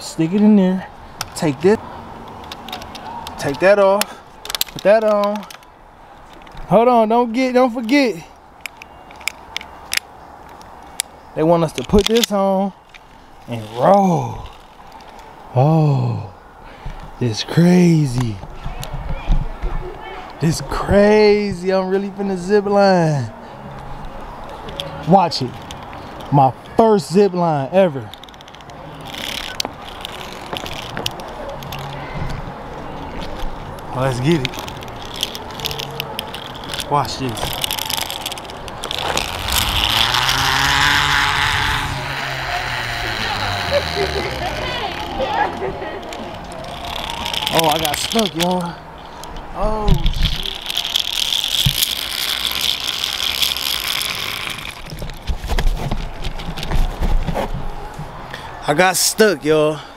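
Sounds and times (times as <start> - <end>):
steady rustling: 28.1 - 58.2
metal clicks from pulleys and clips: 34.3 - 55.2.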